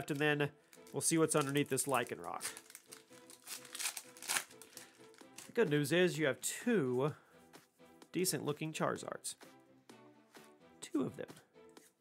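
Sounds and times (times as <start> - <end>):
foil wrapper crinkling: 0.0 - 5.5.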